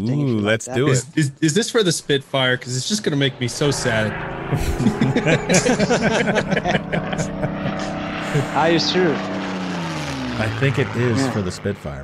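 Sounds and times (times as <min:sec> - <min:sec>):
low hum of held tones: 0:00.0 - 0:09.3
voices and laughter over call: 0:00.3 - 0:09.1, 0:10.4 - 0:11.7.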